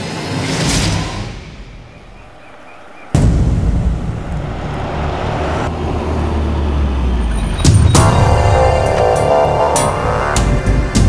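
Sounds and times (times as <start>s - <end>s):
car engine and road rumble: 1.6s - 10.1s
sharp hit: 3.1s - 8.9s.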